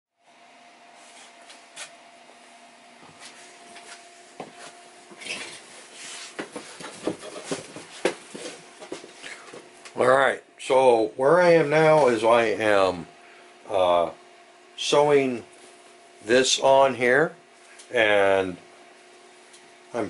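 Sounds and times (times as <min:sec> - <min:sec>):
faint steady hum: 0:00.2 - 0:20.0.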